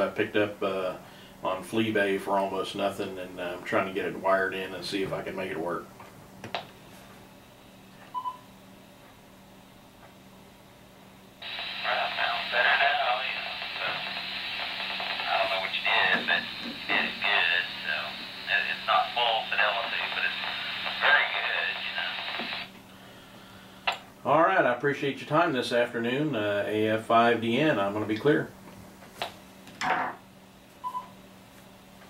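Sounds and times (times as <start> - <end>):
voice over radio speaker: 11.4 - 22.7.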